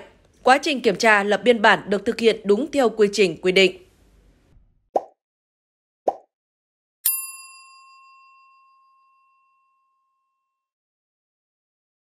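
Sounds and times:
notification bell ding: 7.0 - 10.2.

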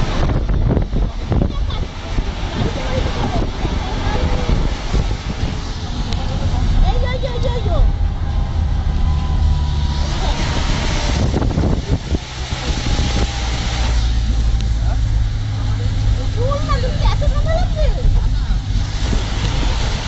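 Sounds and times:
road noise: 0.0 - 20.0
vehicle engine rumble: 0.0 - 20.0.

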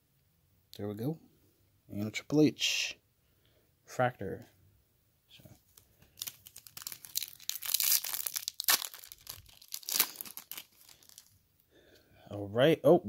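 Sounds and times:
foil wrapper tearing and crinkling: 5.7 - 11.3.

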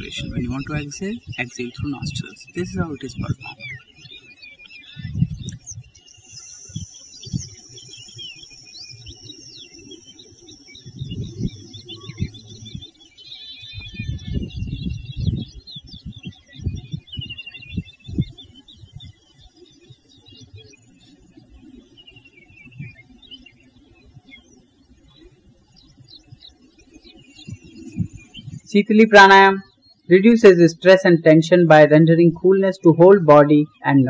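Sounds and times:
wind rumbling on microphone: 0.0 - 3.8, 4.8 - 9.6, 10.2 - 19.2, 22.5 - 23.0, 25.8 - 29.6
small birds chirping: 0.0 - 34.0.

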